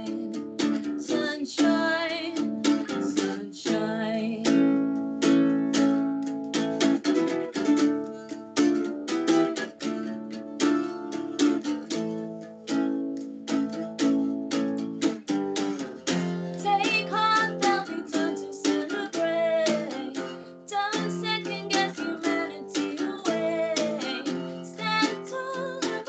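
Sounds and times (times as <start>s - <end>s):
woman singing: 0.0s - 4.9s, 16.5s - 26.0s.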